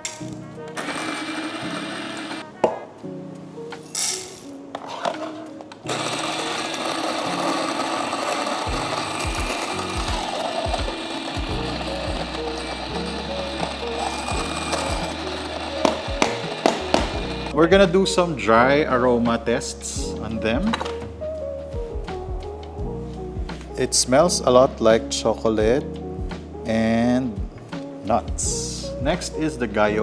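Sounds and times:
background music: 0:00.0 - 0:30.0
electric coffee grinder grinding: 0:00.8 - 0:02.4, 0:05.9 - 0:17.6.

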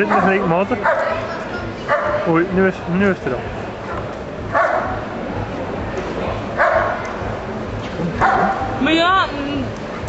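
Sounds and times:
dog barking: 0:00.0 - 0:02.3, 0:04.5 - 0:05.0, 0:06.6 - 0:07.1, 0:08.2 - 0:08.8.

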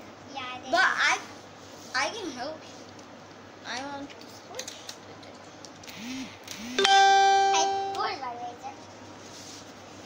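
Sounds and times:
steady musical note: 0:06.8 - 0:08.2.

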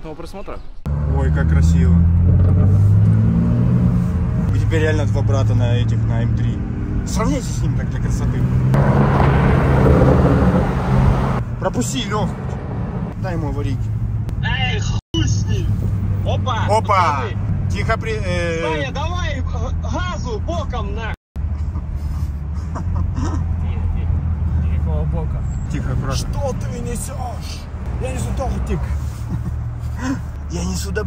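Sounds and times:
rushing road and wind noise: 0:00.8 - 0:31.0
low car engine note: 0:08.6 - 0:11.4.

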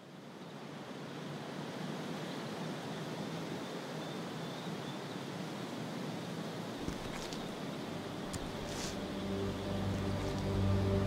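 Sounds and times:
outdoor wind noise: 0:00.0 - 0:11.0.

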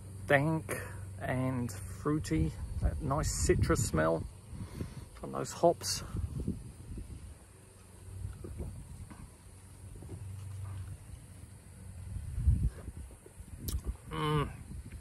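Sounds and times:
sipping and swallowing: 0:13.6 - 0:14.7
man sighing aah: 0:14.1 - 0:14.7.

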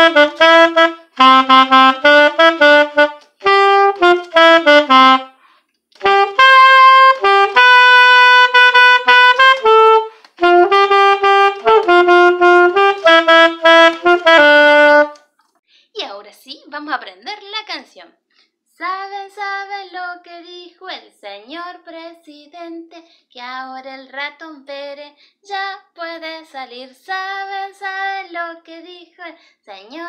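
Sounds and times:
soprano saxophone melody: 0:00.0 - 0:05.4, 0:06.0 - 0:15.2.

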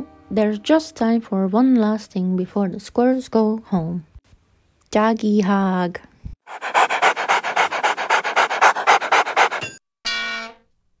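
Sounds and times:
fast dog-style panting: 0:06.4 - 0:09.7.

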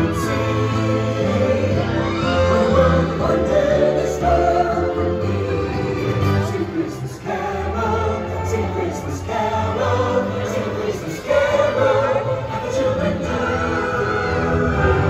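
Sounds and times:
choir singing over loudspeakers: 0:00.0 - 0:15.0.

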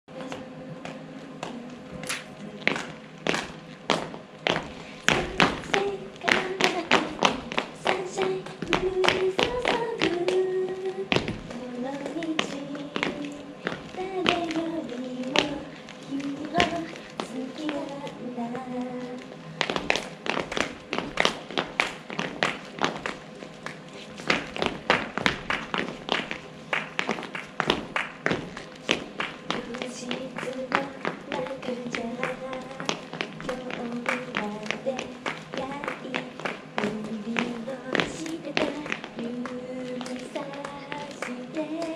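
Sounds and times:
woman singing: 0:00.1 - 0:03.0, 0:05.0 - 0:20.0, 0:29.5 - 0:41.9.

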